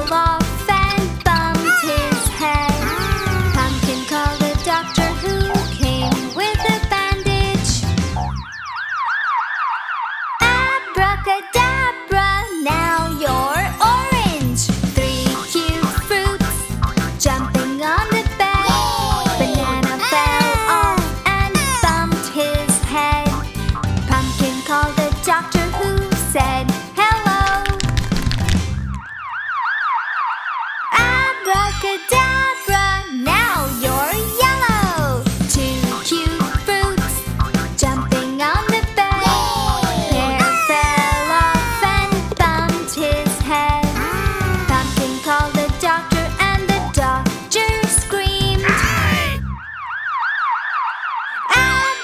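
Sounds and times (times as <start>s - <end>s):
children's song with singing: 0.0s - 8.0s, 10.4s - 23.5s, 24.1s - 27.8s, 30.9s - 48.7s, 51.5s - 52.0s
music: 0.0s - 8.7s, 10.4s - 29.2s, 30.9s - 49.6s, 51.5s - 52.0s
warbling cartoon siren: 8.2s - 10.4s, 29.0s - 31.0s, 49.4s - 51.9s
cartoon siren sound effect: 8.3s - 10.4s, 39.2s - 42.0s, 49.0s - 52.0s.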